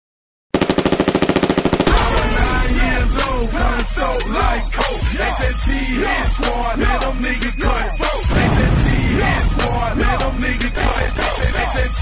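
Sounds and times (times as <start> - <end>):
hip hop beat: 1.8 - 12.0
machine-gun fire: 8.3 - 11.6.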